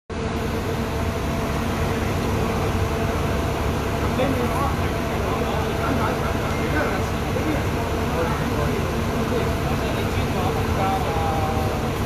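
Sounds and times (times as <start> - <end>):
bus engine idling: 0.1 - 12.0
constant hum: 0.1 - 12.0.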